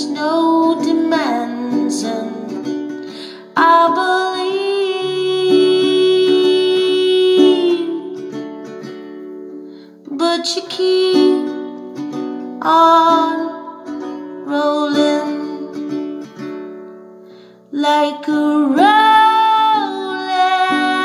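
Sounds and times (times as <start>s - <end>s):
woman singing: 0.0s - 8.4s, 10.0s - 16.3s, 17.7s - 21.0s.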